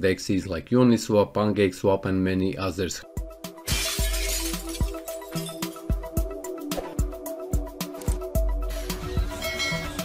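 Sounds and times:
shattering glass effect: 3.6 - 5.9.

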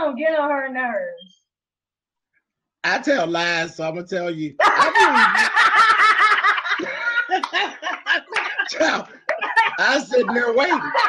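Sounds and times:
people laughing: 4.6 - 11.0.

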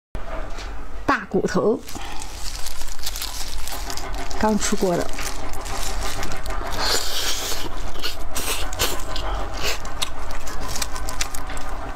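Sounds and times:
plastic gloves crinkling: 1.8 - 11.9
small crackles and clicks: 9.8 - 11.7.

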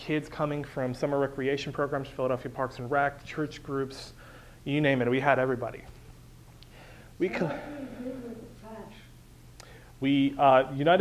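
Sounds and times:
steady low hum: 0.0 - 11.0
man speaking softly: 7.2 - 7.8.

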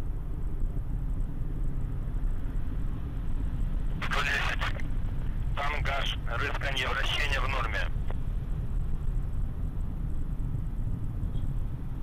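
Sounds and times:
distant rocket engine rumble: 0.0 - 12.0
radio voice callout: 4.0 - 4.9, 5.5 - 8.0.

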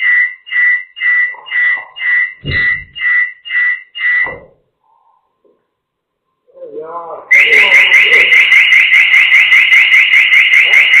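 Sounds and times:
electronic alarm chirping: 0.0 - 4.5, 7.3 - 11.0.

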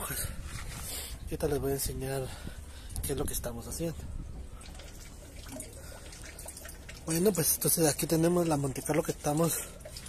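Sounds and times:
water trickling and dripping: 2.9 - 10.0.

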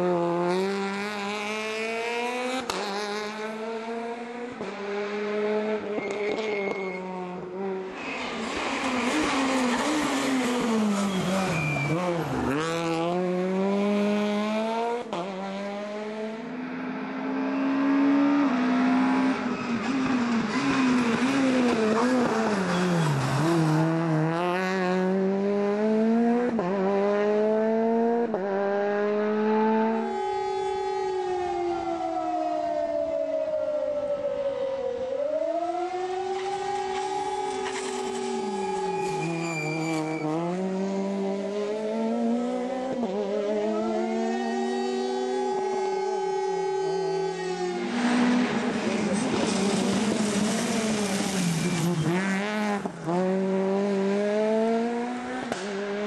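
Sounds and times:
rally car engine revving: 0.0 - 31.5, 35.9 - 56.0.

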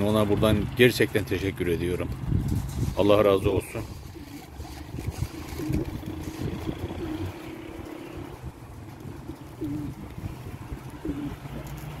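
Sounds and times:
pigeons cooing: 3.6 - 12.0.

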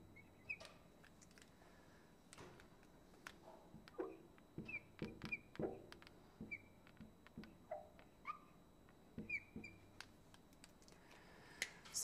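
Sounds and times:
marker squeaking on glass: 0.2 - 0.8, 3.9 - 8.6, 9.2 - 10.0
light taps: 2.4 - 8.1.

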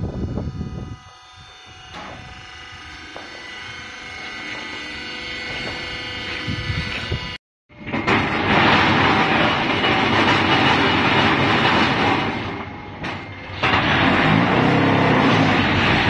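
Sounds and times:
block making machine clattering: 7.8 - 16.0.

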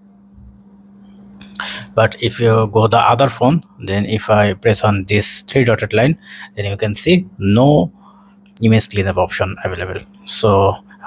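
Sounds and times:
faint electrical hum: 0.0 - 11.0
man speaking: 1.6 - 8.0, 8.6 - 11.0.

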